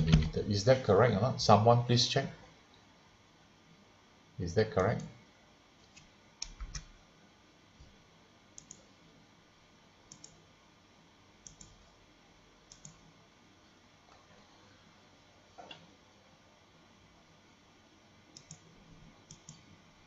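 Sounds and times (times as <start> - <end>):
computer mouse clicks: 5.8 - 6.9, 8.6 - 8.9, 10.1 - 10.4, 11.4 - 11.9, 12.7 - 13.1, 18.4 - 19.7.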